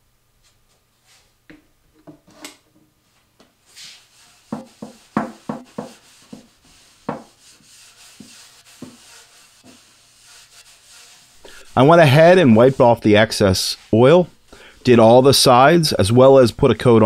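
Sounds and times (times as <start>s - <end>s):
paper towel rubbing on wood: 3.6s - 15.7s.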